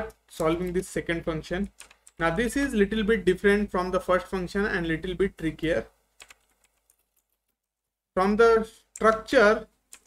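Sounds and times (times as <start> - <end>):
faint keyboard keystrokes: 1.6 - 2.2, 6.2 - 7.6.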